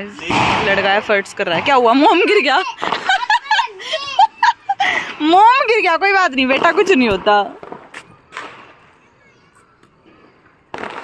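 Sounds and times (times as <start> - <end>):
firecracker bang: 0.2 - 3.5, 6.4 - 8.9, 10.1 - 11.0.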